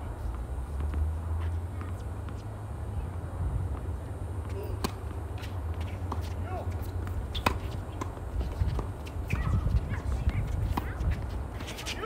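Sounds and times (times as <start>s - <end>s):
low steady rumble: 0.0s - 11.6s
tennis balls struck by rackets: 3.6s - 12.0s
shoe squeaks on court: 5.4s - 10.0s.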